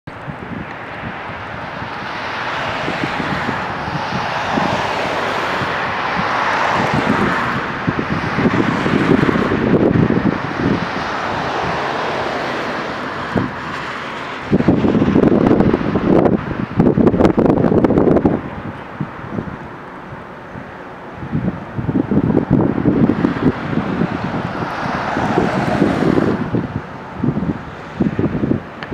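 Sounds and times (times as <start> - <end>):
cars passing by: 0.1 - 28.9
wind gusting against microphone: 0.1 - 28.9.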